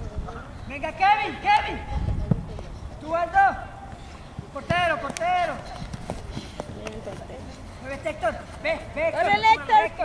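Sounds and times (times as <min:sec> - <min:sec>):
distant shouting and voices: 0:00.0 - 0:10.0
man shouting: 0:03.1 - 0:03.7.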